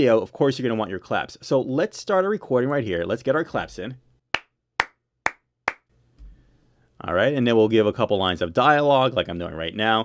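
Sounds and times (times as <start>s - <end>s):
hand claps: 4.3s - 5.9s.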